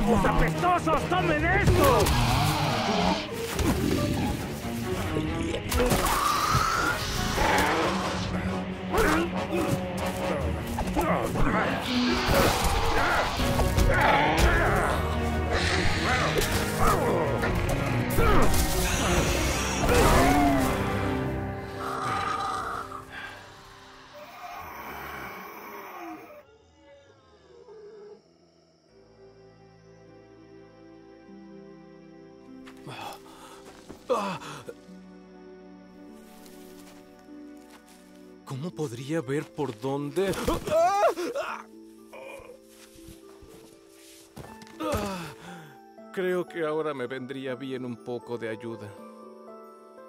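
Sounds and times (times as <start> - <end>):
film soundtrack music: 0.0 - 50.0
winged creatures crying: 1.7 - 4.6, 5.8 - 9.5, 10.1 - 28.2.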